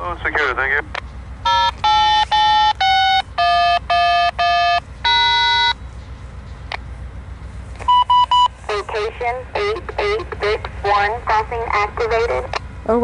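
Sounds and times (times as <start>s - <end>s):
touch-tone beeps: 1.5s - 5.8s, 7.9s - 8.8s
automated voice: 8.7s - 12.6s.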